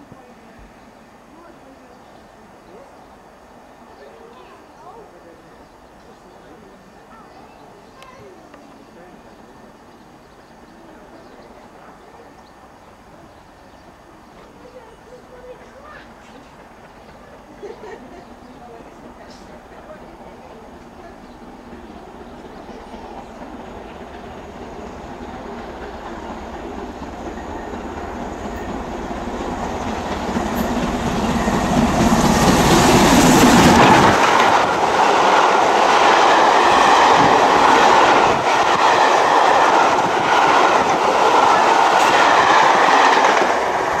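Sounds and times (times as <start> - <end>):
steam locomotive passing: 0.0 - 44.0.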